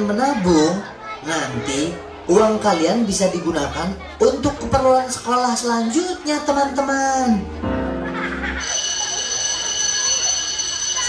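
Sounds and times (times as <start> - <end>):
background music chord: 0.0 - 9.6
school bell ringing: 8.5 - 11.0.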